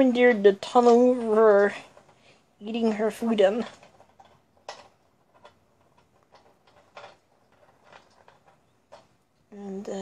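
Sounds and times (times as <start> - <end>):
faint irregular clicks: 0.0 - 10.0.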